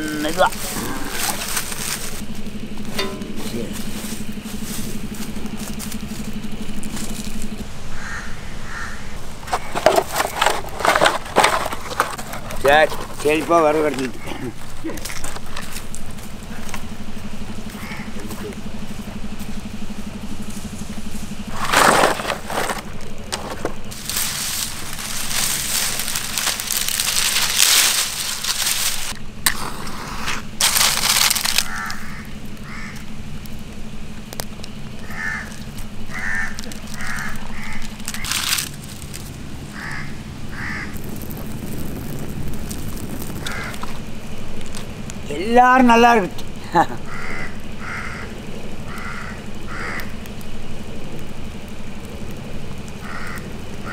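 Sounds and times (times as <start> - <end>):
dry palm fronds rustling and crackling: 0.0 - 53.9
crows cawing: 7.8 - 9.8, 16.5 - 18.5, 31.2 - 33.2, 35.0 - 38.6, 39.6 - 41.0, 43.4 - 44.0, 46.7 - 50.3, 52.8 - 53.9.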